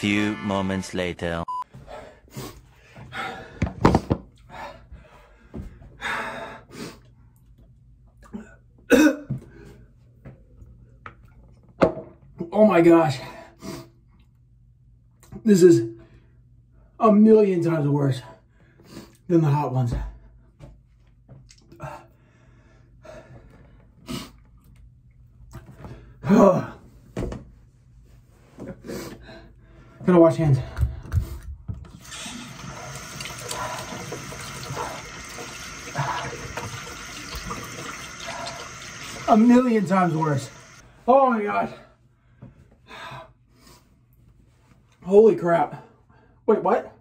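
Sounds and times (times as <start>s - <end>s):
man breathing heavily: 1.7s - 3.8s, 4.4s - 7.2s, 21.8s - 24.4s, 41.9s - 44.0s.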